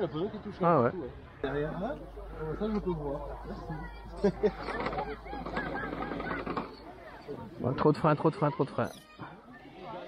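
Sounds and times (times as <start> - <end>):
honking bird calls: 4.3 - 7.2.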